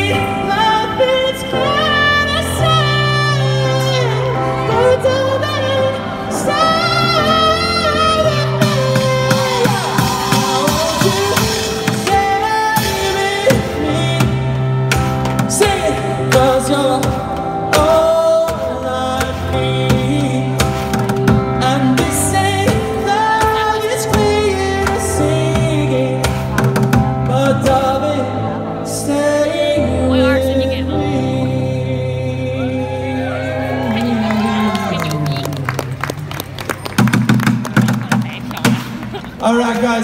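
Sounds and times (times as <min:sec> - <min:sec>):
man singing: 0:00.0 - 0:35.0.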